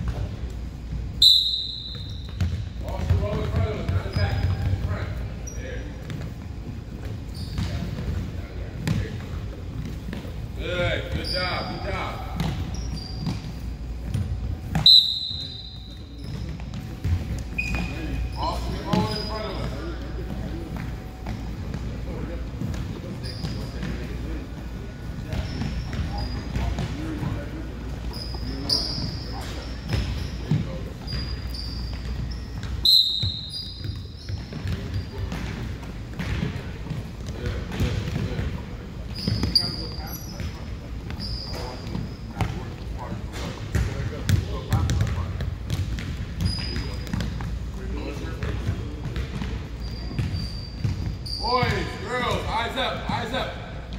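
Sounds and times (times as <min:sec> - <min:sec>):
sneakers squeaking: 0:00.0 - 0:53.9
basketballs dribbled on wooden floor: 0:01.8 - 0:05.1, 0:05.9 - 0:52.0.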